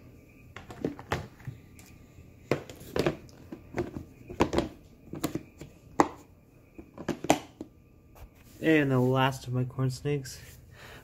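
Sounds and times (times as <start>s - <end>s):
plastic tub lid clicking: 6.9s - 7.7s.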